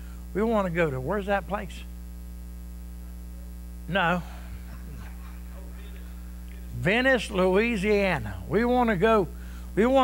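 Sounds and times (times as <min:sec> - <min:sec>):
low electrical mains hum: 0:00.0 - 0:10.0
person speaking: 0:03.0 - 0:10.0.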